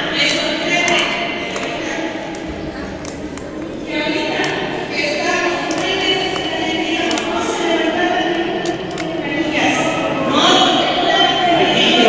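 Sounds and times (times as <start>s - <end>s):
crowd voices in echoing hall: 0.0s - 12.0s
speech in echoing hall: 0.0s - 12.0s.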